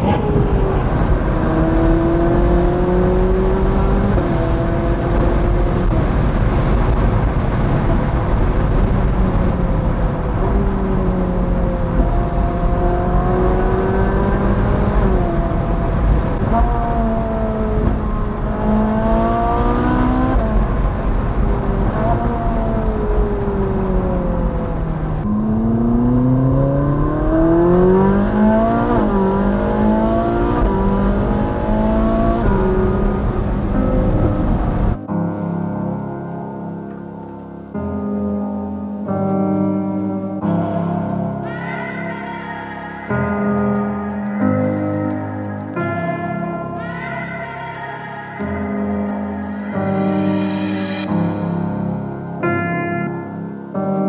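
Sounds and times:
road noise: 0.0s - 35.0s, 40.4s - 52.5s
sports car engine accelerating: 0.0s - 35.0s
wind noise: 0.0s - 35.0s.

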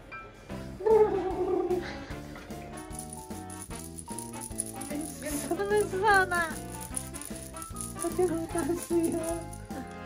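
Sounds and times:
baby rattle shaking: 2.6s - 10.0s.

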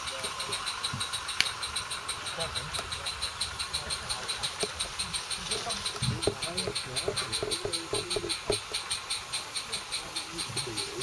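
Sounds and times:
steam locomotive exhaust beats: 0.0s - 11.0s.

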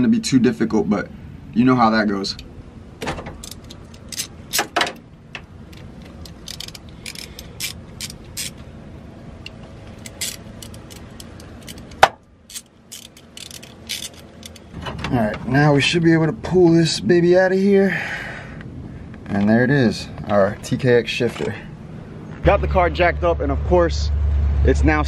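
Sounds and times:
allen key clicking on metal: 3.0s - 8.6s, 9.4s - 14.7s.

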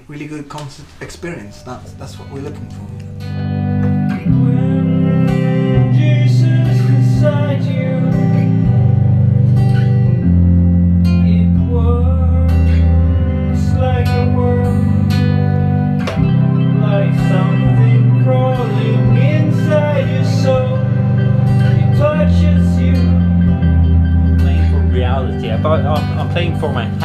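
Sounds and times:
strummed acoustic guitar: 1.0s - 27.0s
held low synthesizer notes: 1.6s - 27.0s.

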